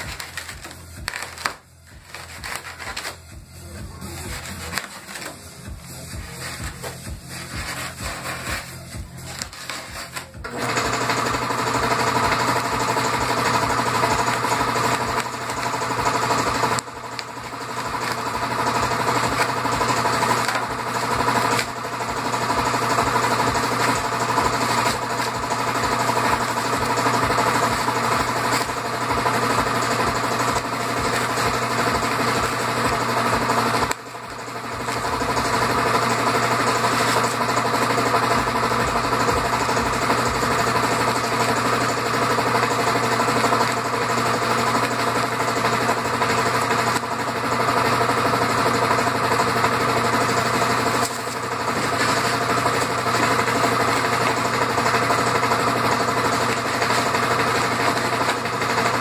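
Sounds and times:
electric tool carving foam: 0.0s - 59.0s.

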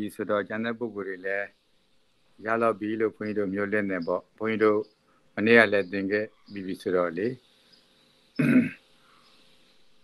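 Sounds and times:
man speaking: 0.0s - 1.5s, 2.4s - 7.4s
man clearing throat: 8.4s - 8.8s.

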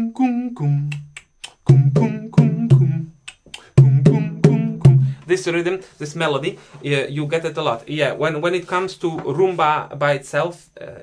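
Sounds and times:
congas played by hand: 0.9s - 5.2s.

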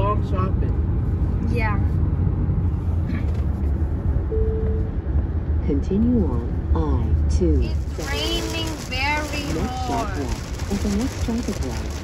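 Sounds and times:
car cabin road noise: 0.0s - 12.0s.

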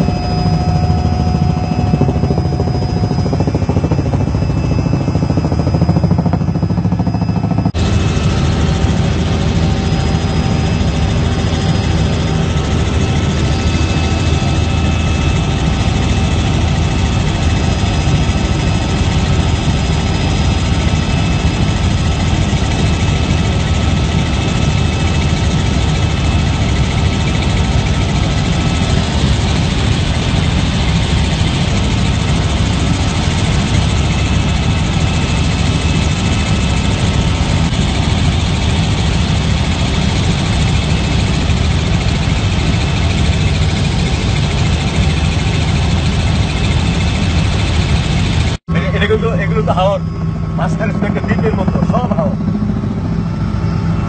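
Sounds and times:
helicopter engine and rotor drone: 0.0s - 54.0s.

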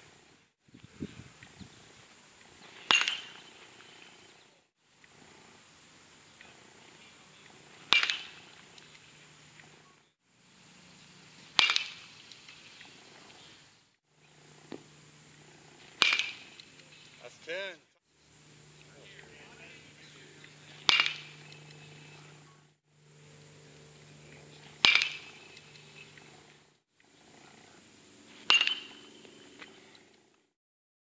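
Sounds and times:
baseball bat cracking ball: 2.8s - 3.4s, 7.8s - 9.0s, 11.5s - 12.1s, 15.8s - 17.0s, 20.6s - 22.4s, 24.6s - 26.3s, 28.4s - 29.1s.

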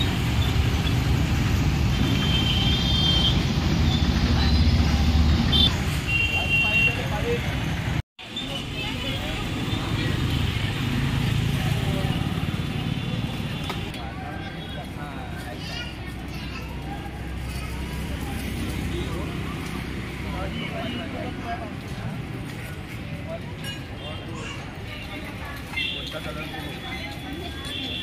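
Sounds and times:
traffic noise: 0.0s - 28.0s
people's voices: 6.3s - 28.0s.

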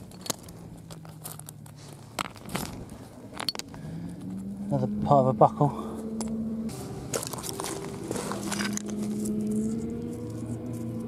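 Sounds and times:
pebbles crunching and scraping: 0.0s - 4.4s, 6.7s - 11.0s
distant engine hum: 0.0s - 11.0s.

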